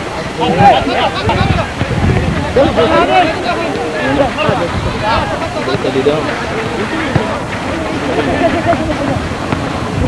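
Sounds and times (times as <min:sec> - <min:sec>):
people talking and calling out: 0:00.0 - 0:10.0
steady rushing noise: 0:00.0 - 0:10.0.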